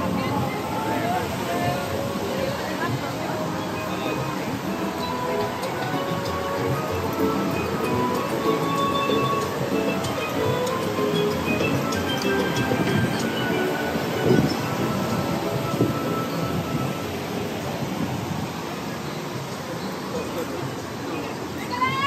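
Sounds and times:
people talking: 0.0 - 8.6, 18.8 - 22.0
music over loudspeakers: 0.0 - 18.0.

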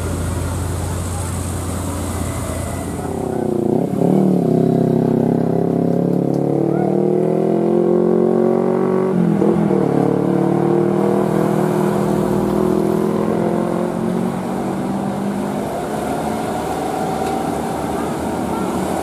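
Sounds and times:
diesel truck engine labouring: 0.0 - 19.0.

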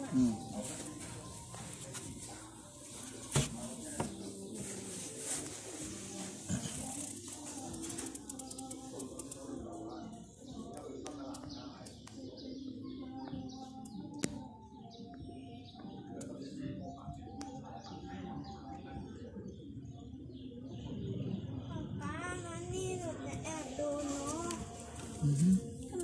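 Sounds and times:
small birds chirping: 0.0 - 26.0.

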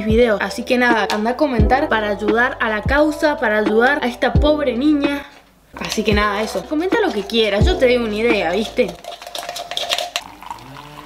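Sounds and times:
hot water pouring into cup: 5.8 - 11.0.

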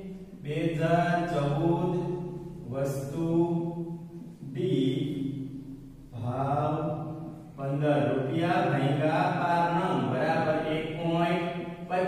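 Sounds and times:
man speaking in sing-song syllables: 0.0 - 5.2, 6.1 - 12.0.

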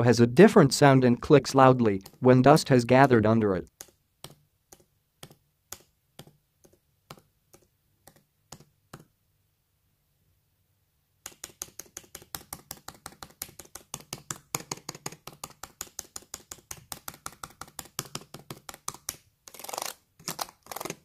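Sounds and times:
laptop keys clicking: 3.7 - 9.1, 11.2 - 19.2.

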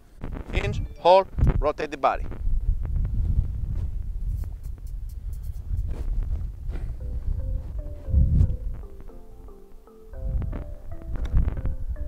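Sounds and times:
wind rumble on microphone: 0.0 - 9.1, 10.2 - 12.0
marimba-like mallet music: 0.7 - 1.2, 7.0 - 12.0.

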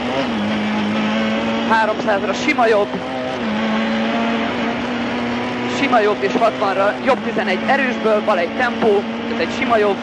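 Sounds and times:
car engine running hard: 0.0 - 10.0.

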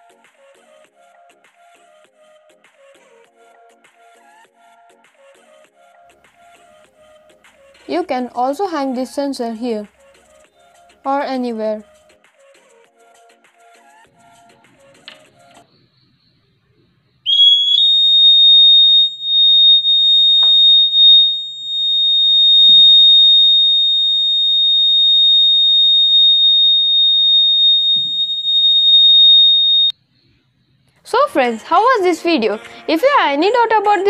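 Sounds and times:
gas detector buzzer alarm: 17.3 - 29.9.

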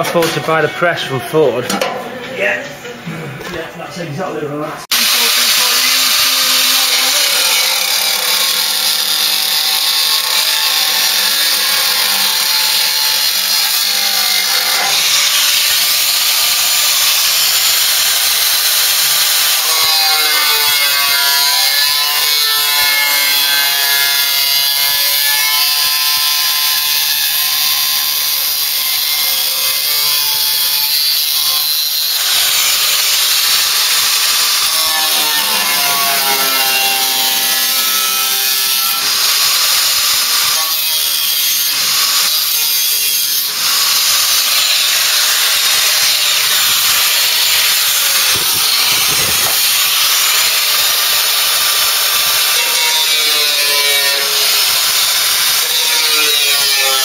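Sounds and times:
angle grinder cutting steel: 4.9 - 57.0.

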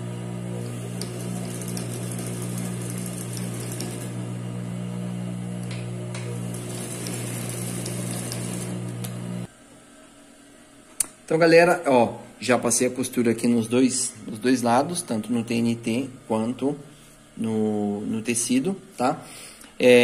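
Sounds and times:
sewing machine stitching: 0.6 - 4.2, 6.3 - 9.0.

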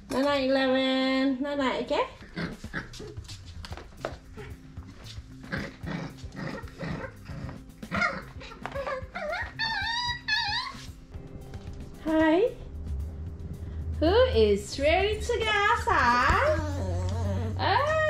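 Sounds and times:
puppies scuffling: 2.2 - 11.8
puppies whining: 5.5 - 11.8, 16.1 - 18.0.

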